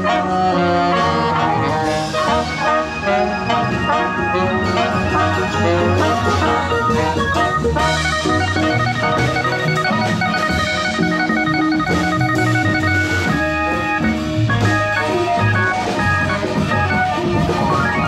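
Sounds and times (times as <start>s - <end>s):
drum kit: 0.0s - 18.0s
organ keyboard chords: 0.0s - 18.0s.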